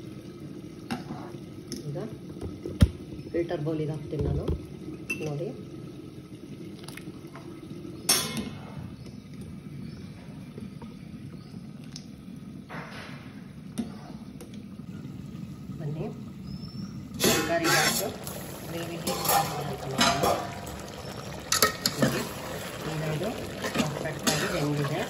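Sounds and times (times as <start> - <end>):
water dripping and pouring: 3.9 - 12.7, 14.4 - 25.0.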